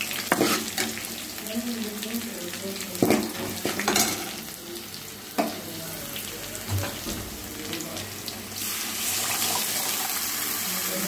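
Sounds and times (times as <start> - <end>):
liquid sizzling in hot oil: 0.0 - 11.0.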